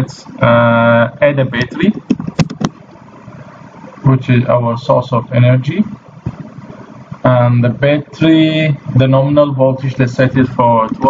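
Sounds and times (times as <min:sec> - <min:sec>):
faint background hum: 0:00.0 - 0:11.0.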